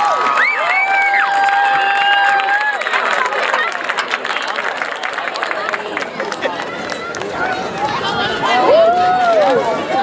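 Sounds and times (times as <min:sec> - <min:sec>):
crowd cheering and whooping: 0:00.0 - 0:03.8, 0:05.5 - 0:10.0.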